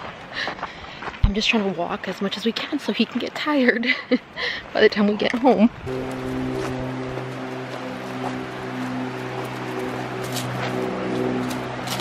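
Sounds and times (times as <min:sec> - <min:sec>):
background music with held low note: 0:05.9 - 0:12.0.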